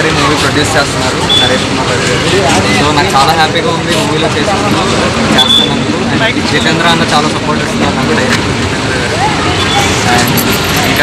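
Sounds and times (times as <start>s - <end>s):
man speaking: 0.0s - 8.4s
roadside traffic noise: 0.0s - 11.0s.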